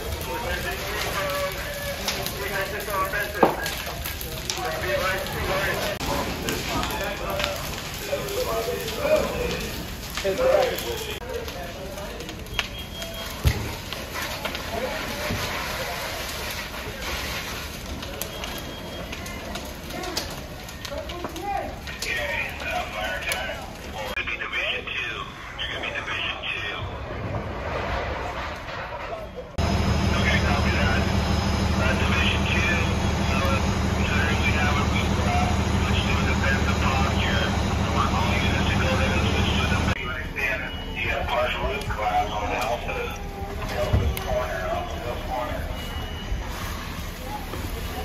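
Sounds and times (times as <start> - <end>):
fire crackles and pops: 0.0 - 48.0
fire rushing: 0.0 - 48.0
voices: 0.0 - 48.0
diesel engine droning: 29.5 - 48.0.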